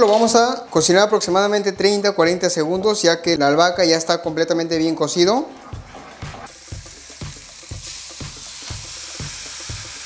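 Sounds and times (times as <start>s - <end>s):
background music with beat: 0.0s - 10.0s
food sizzling in a pan: 6.5s - 10.0s.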